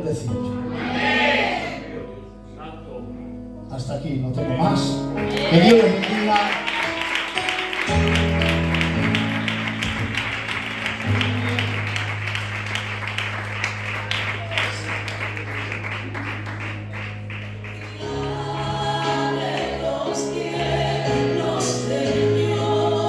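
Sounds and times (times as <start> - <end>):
held keyboard chords: 0.0 - 23.0
voices singing gospel song: 0.2 - 2.2, 17.9 - 23.0
hands clapping along: 5.3 - 18.4.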